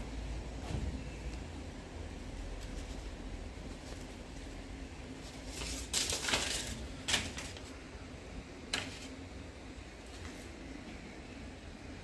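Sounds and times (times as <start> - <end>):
banknotes rustling: 2.2 - 7.8.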